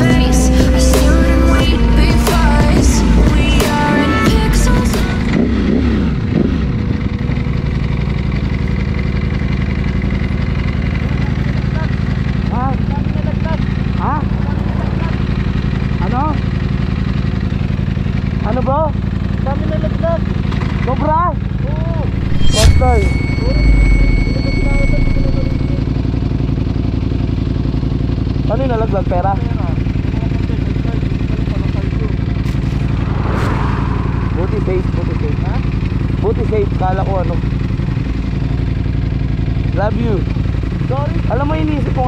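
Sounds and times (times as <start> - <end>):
motorcycle engine cruising: 0.0 - 19.5.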